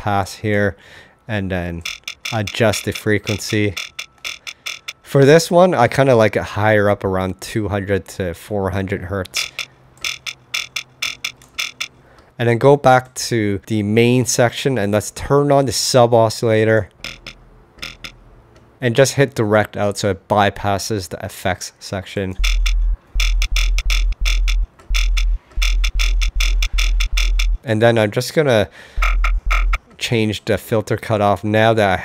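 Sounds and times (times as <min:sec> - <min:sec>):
choppy thin synth bass stabs: 0:22.4 - 0:27.6, 0:29.0 - 0:29.8.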